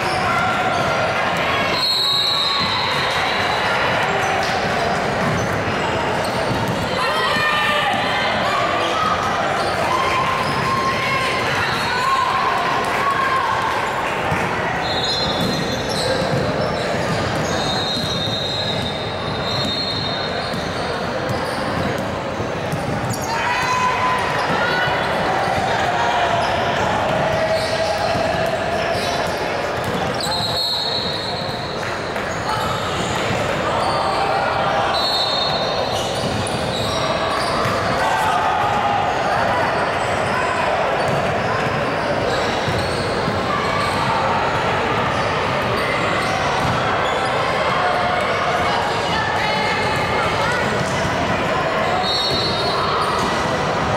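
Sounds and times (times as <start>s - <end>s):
echoing voices in a gym: 0.0s - 53.9s.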